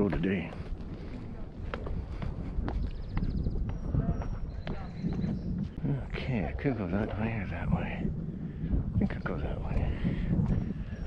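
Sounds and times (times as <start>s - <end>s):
footsteps on logs and rock: 0.0s - 5.8s
wind rumble on microphone: 0.0s - 11.0s.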